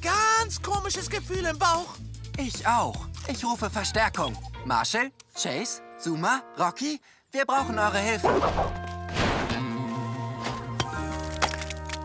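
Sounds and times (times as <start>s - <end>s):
background music with held notes: 0.0s - 12.0s
mallet cracking stone: 10.8s - 12.0s.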